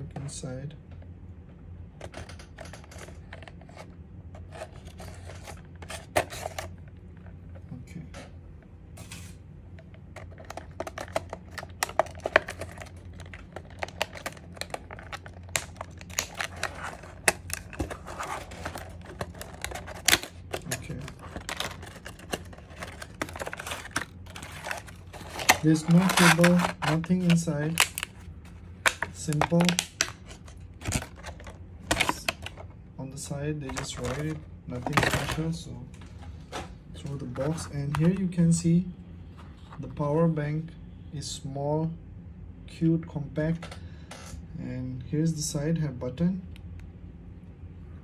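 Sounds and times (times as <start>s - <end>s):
plastic packaging crackling: 10.2s - 32.7s, 33.6s - 35.4s.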